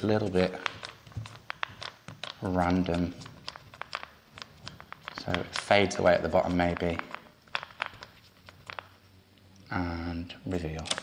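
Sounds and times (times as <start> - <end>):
paint roller tapping: 0.3 - 9.0.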